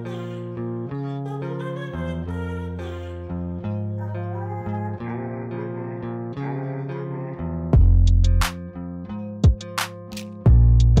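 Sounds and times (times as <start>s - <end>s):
instrumental background music: 0.0s - 11.0s.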